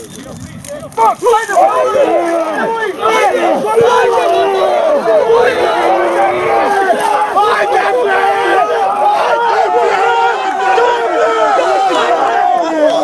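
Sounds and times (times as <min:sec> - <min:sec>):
men shouting and talking: 0:00.0 - 0:13.0.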